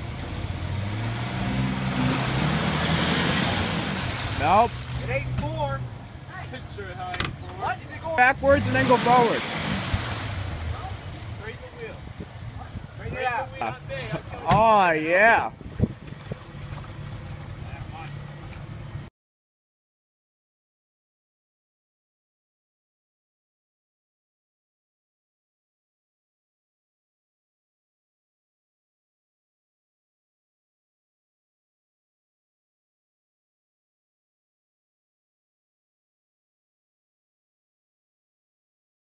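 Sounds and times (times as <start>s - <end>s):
engine revving hard: 0.3s - 5.9s, 8.2s - 11.9s
vehicle engine idling: 3.7s - 8.8s, 10.3s - 19.1s.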